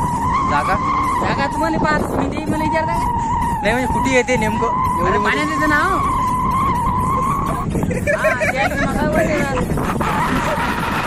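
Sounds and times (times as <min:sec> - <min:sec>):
steady high tone: 0:00.0 - 0:11.0
wind on microphone: 0:00.0 - 0:11.0
young men laughing and talking: 0:03.8 - 0:11.0.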